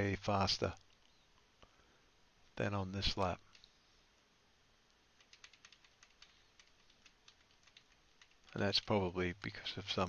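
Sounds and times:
computer clicking: 3.2s - 3.7s, 5.2s - 9.0s.

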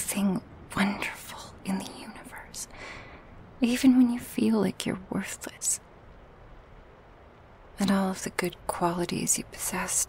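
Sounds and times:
woman whispering: 0.0s - 2.8s, 3.6s - 5.8s, 7.8s - 10.0s.

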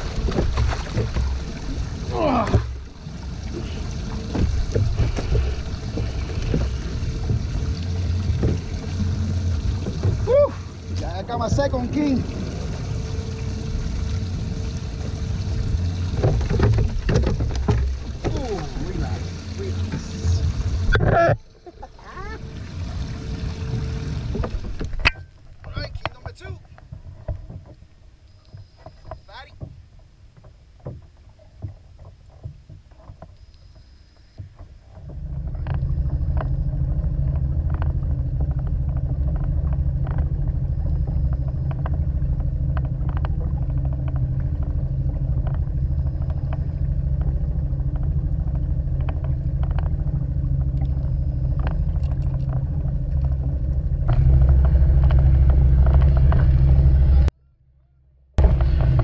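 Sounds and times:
outboard motor running: 0.0s - 57.3s, 58.4s - 59.0s
gear knocks and clicks: 16.0s - 20.2s, 24.3s - 57.3s.

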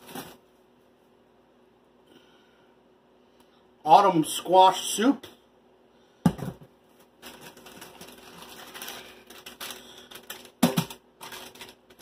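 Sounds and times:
plastic wrappers crinkling: 0.0s - 0.4s, 7.0s - 12.0s
packages knocking together: 7.2s - 12.0s.

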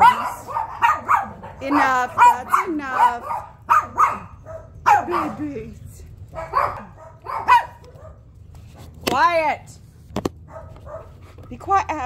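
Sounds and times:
puppy yipping: 0.0s - 5.5s, 6.3s - 8.2s.

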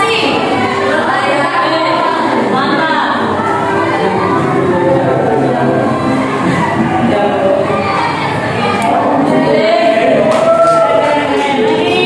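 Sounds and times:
group of voices singing: 0.0s - 12.0s.

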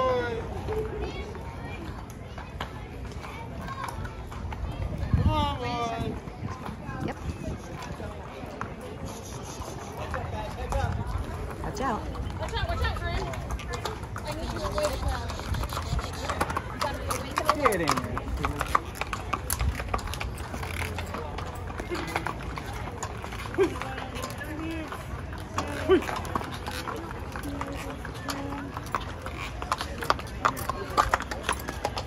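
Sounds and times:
crowd chatter: 0.0s - 32.0s
hooves clopping on brick pavement: 0.0s - 32.0s.

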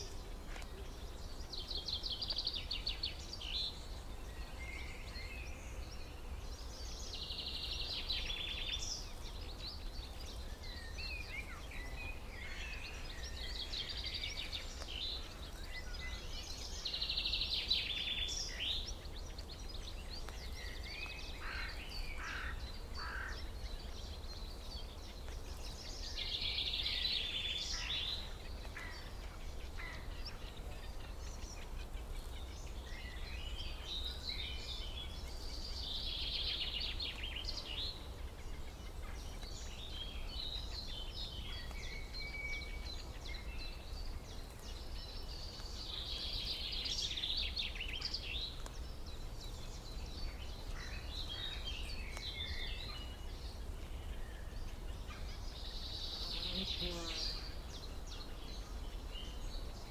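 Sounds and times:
small birds chirping and trilling: 0.0s - 59.9s.

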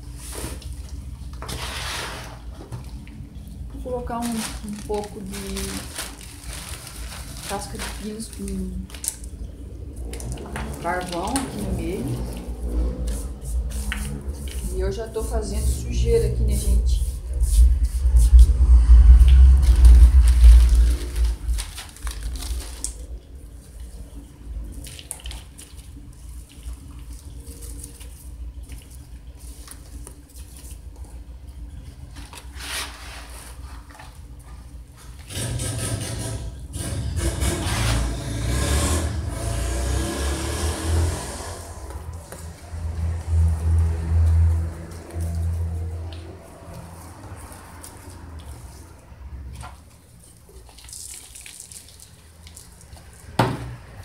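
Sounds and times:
potting mix clicks and rustles: 0.0s - 18.4s, 19.2s - 35.6s
granular material pouring: 3.5s - 15.0s, 16.6s - 35.6s
loud low rumble: 8.7s - 24.6s, 37.2s - 47.4s.

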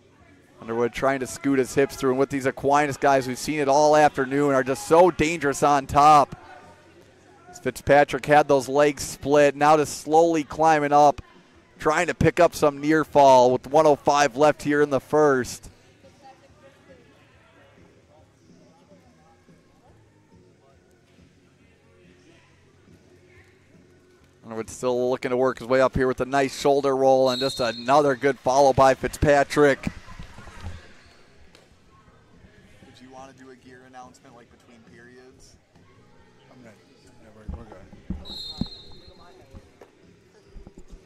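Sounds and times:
murmur of spectators' voices: 0.0s - 41.0s.

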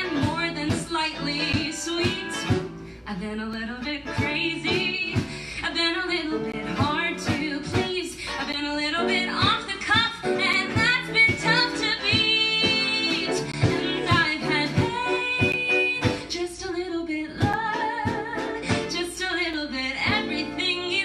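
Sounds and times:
acoustic guitar: 0.0s - 21.0s
drums: 0.0s - 21.0s
piano: 0.0s - 21.0s
woman singing: 0.0s - 21.0s.

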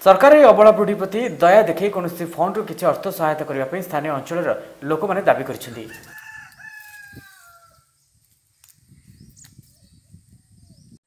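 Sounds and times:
person speaking: 0.0s - 6.0s
rooster crowing: 5.6s - 8.0s.

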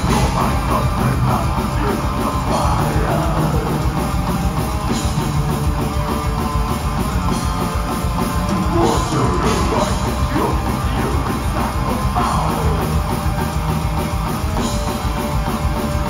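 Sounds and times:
live metal band playing: 0.0s - 16.0s.

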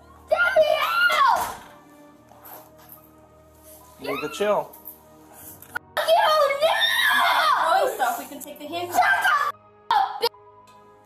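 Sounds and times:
child yelping and whining: 0.3s - 1.5s, 6.0s - 10.3s.

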